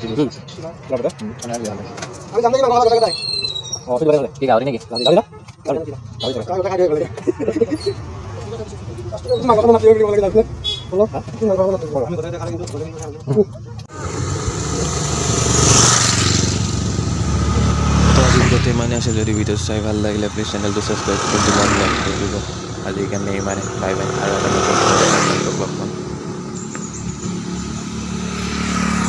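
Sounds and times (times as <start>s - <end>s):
motorcycles passing: 0.0s - 29.0s
car passing: 13.9s - 29.0s.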